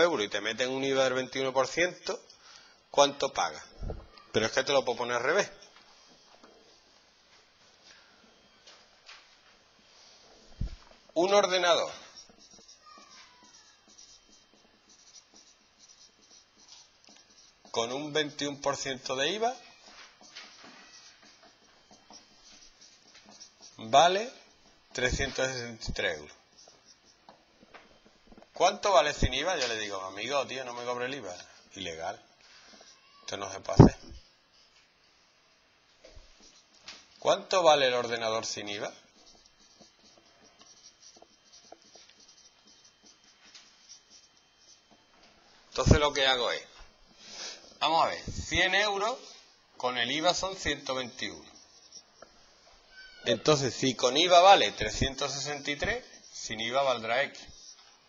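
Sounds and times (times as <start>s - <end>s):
marker writing on a whiteboard: 4.9s - 35.2s, 36.0s - 58.0s.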